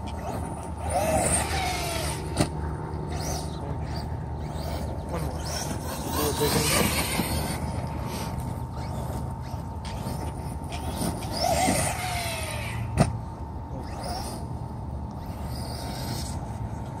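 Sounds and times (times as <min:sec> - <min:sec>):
rc truck electric motor whining: 0:00.0 - 0:17.0.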